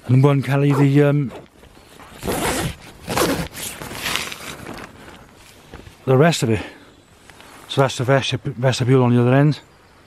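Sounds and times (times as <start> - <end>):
tent zip being pulled open: 0.6 - 5.6
tent fabric rustling: 0.8 - 6.1.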